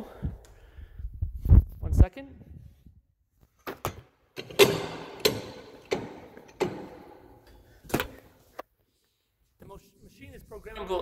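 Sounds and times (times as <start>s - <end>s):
sharp knocks and clunks: 3.6s - 8.2s.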